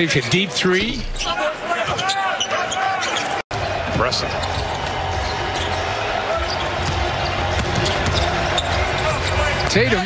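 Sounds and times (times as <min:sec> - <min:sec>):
sneakers squeaking: 0:01.1 - 0:03.4, 0:04.3 - 0:09.8.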